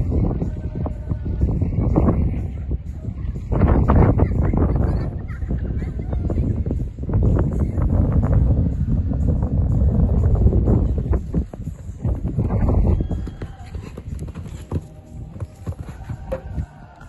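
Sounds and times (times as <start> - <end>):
wind rumble on microphone: 0.0 - 17.0
horse hoofbeats on sand: 10.3 - 17.0.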